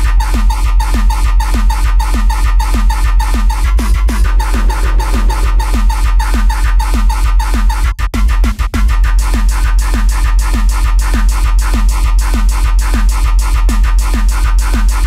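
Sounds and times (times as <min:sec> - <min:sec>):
deep bass: 0:00.0 - 0:15.0
distorted kick drums: 0:00.0 - 0:15.0.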